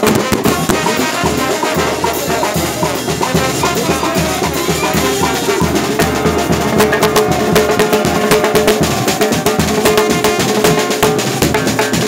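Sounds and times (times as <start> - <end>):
brass band music: 0.0 - 12.0
sharp percussion hits: 0.0 - 12.0.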